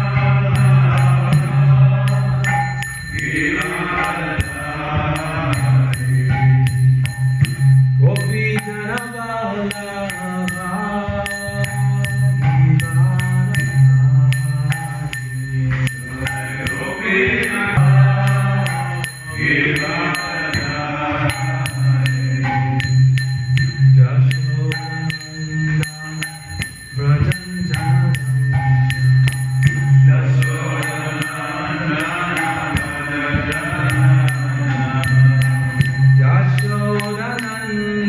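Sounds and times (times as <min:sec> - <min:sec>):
small hand cymbals ringing: 0:00.0 - 0:38.0
mantra chanting: 0:03.2 - 0:06.1, 0:15.6 - 0:22.4, 0:30.0 - 0:35.5.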